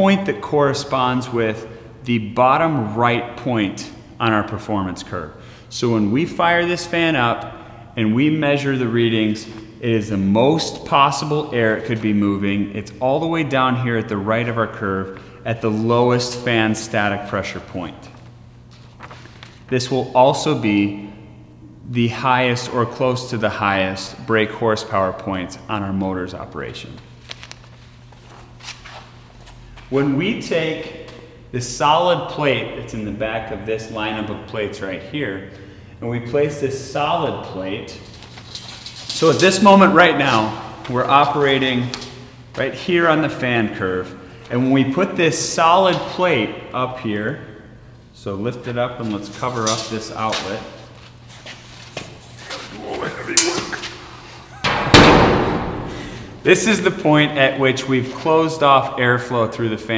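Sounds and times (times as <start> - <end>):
fan humming: 0.0 - 59.9
paper rustling: 18.1 - 19.7
steel plate slamming: 54.6 - 56.5.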